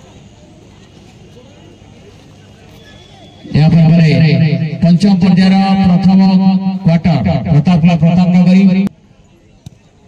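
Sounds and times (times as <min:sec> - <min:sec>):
distant shouts and voices: 0:01.3 - 0:10.0.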